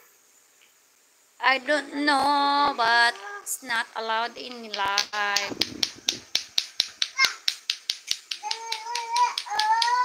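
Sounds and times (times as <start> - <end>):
sharp rhythmic clacks: 4.4 - 10.0.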